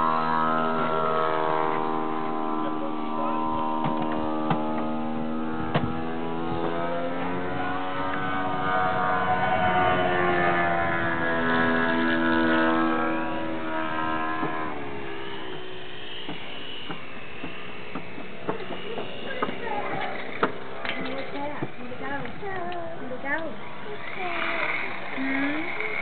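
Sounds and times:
model plane motor buzzing: 0.0s - 26.0s.

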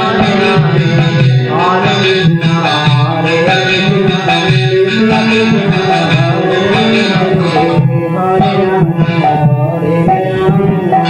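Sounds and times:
hand drum beat: 0.0s - 11.0s
sustained instrumental tones: 0.0s - 11.0s.

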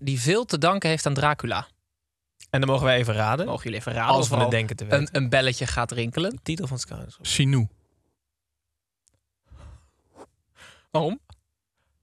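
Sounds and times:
person speaking: 2.4s - 7.7s
person breathing out: 9.5s - 9.9s, 10.6s - 10.9s.

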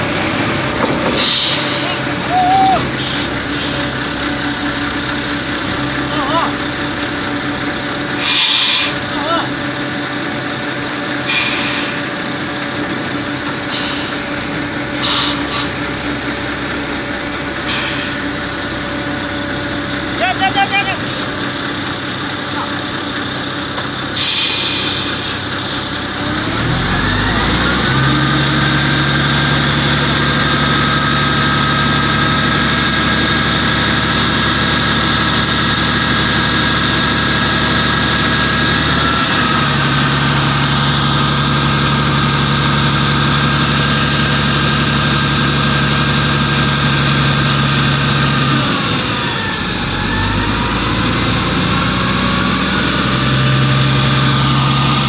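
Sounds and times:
heavy truck engine pulling: 0.0s - 55.0s.

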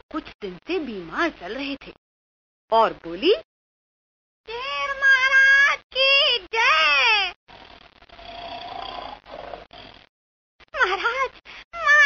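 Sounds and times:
lion roaring: 8.2s - 9.9s.

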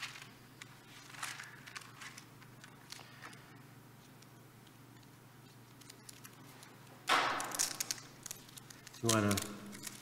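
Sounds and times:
plastic cup ticks and crinkles: 0.0s - 3.5s, 4.1s - 10.0s.

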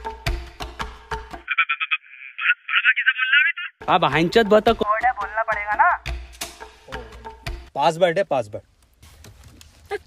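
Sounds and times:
percussive music: 3.8s - 7.7s.

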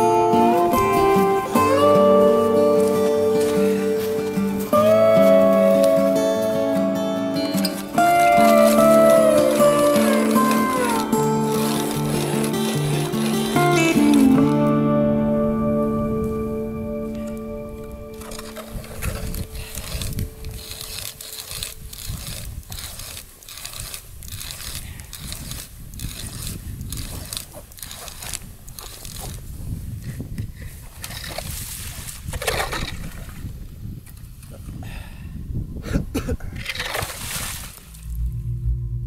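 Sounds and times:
music: 0.0s - 20.7s
ice auger scraping through ice: 0.4s - 6.6s, 7.4s - 14.6s, 18.2s - 33.2s, 36.5s - 38.2s.

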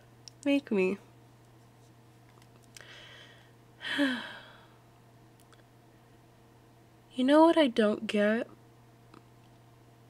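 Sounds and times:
woman sighing: 2.8s - 4.8s.

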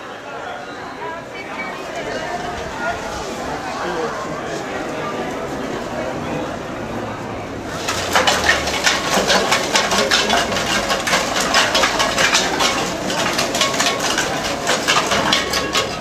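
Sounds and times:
cans and plastic clinking and rustling: 7.7s - 16.0s.

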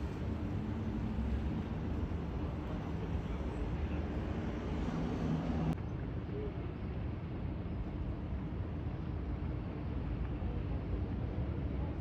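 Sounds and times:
distant traffic rumble: 0.0s - 12.0s.

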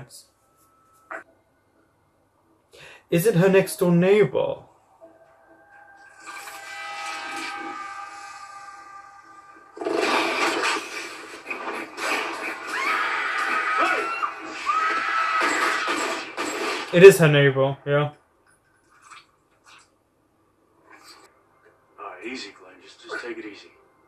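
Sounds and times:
sharp action hits: 9.8s - 12.9s.

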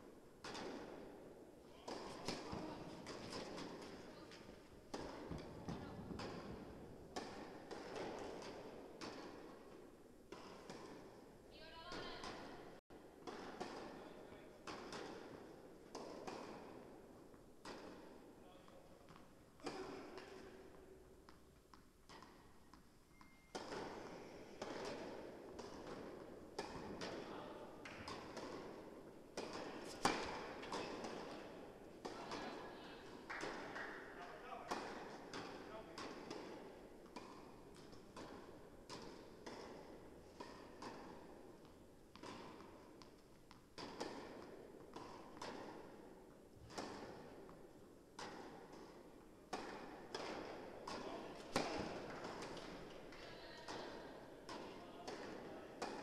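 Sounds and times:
tennis ball bouncing on court: 0.4s - 56.0s
tennis ball struck by rackets: 0.4s - 56.0s.

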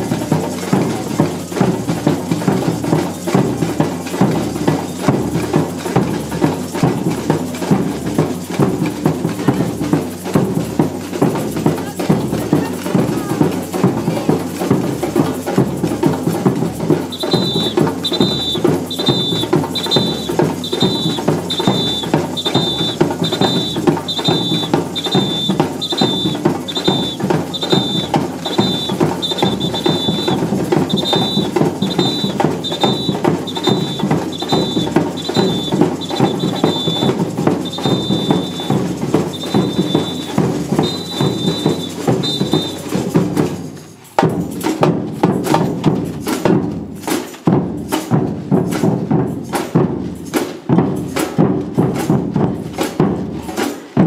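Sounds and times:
bass drums beating: 0.0s - 46.8s
snare drums beating: 0.0s - 54.0s
shrill two-tone whistle blasts: 17.1s - 43.0s.

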